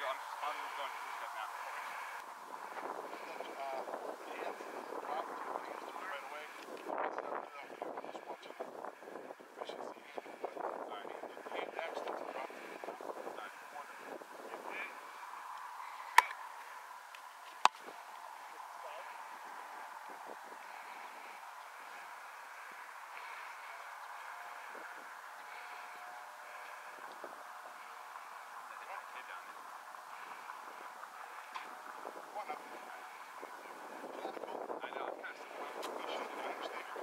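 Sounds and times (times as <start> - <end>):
faint outdoor background: 0.0 - 37.0.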